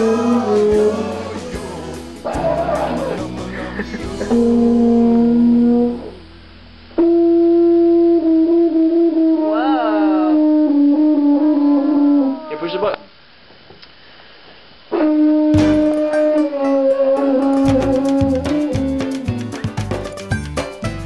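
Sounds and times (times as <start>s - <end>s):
tuba notes: 0.0s - 12.7s.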